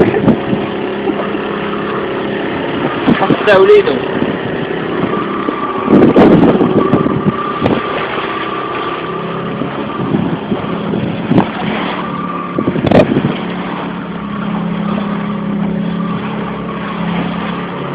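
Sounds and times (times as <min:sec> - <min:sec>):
boat engine humming: 0:00.0 - 0:17.9.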